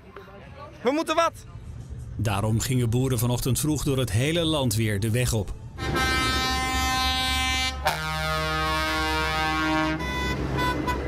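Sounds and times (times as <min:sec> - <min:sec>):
air horn blasts: 0:05.8 - 0:11.0.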